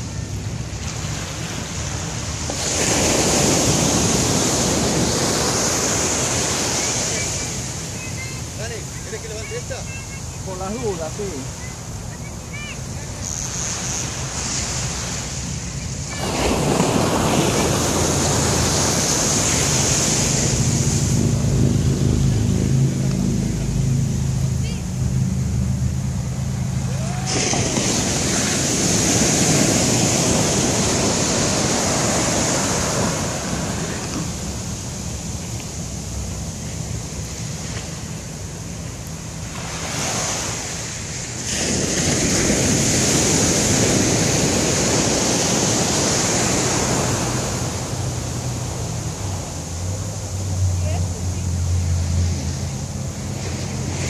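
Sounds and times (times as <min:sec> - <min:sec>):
surf washing up beach: 0:00.0 - 0:54.0
wind buffeting microphone: 0:16.2 - 0:25.4.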